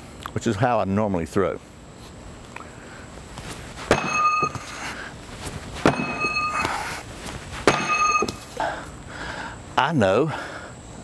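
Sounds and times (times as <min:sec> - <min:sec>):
metal spike clanking and ringing: 0:03.9 - 0:04.7, 0:05.9 - 0:06.8, 0:07.7 - 0:08.5.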